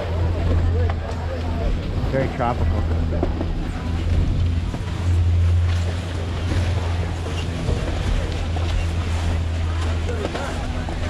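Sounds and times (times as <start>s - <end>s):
chairlift drive machinery humming: 0.0s - 11.0s.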